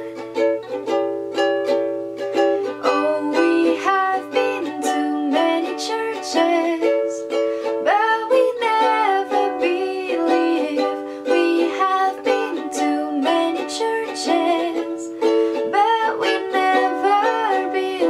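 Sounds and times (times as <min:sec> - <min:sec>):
ukulele strumming: 0:00.0 - 0:18.0
woman singing: 0:02.6 - 0:18.0.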